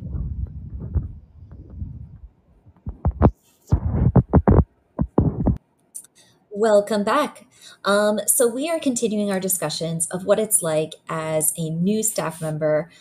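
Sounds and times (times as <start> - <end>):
irregular thumps and knocks: 0.0 - 5.6
low throbbing rumble: 0.0 - 5.6.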